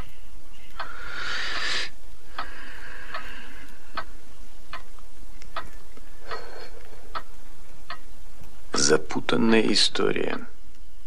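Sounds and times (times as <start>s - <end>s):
clock ticking: 0.7s - 10.6s.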